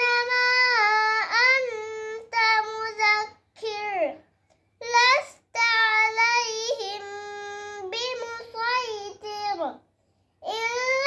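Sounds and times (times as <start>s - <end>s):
girl chanting recitation: 0.0s - 11.0s.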